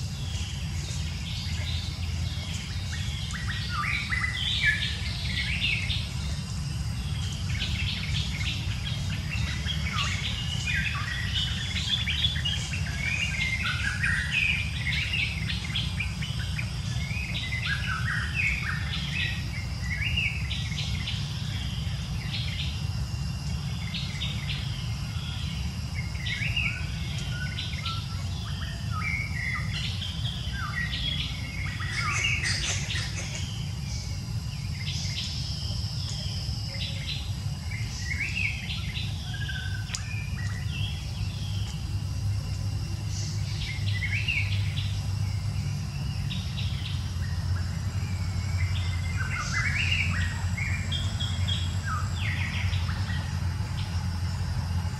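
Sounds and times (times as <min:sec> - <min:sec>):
birds chirping: 0:00.0 - 0:54.9
high insect-like tone: 0:00.0 - 0:54.9.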